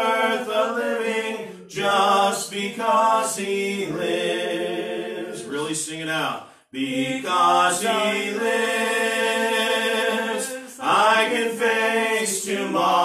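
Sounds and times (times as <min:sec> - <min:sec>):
slow hymn singing: 0:00.0 - 0:05.6, 0:06.7 - 0:13.0.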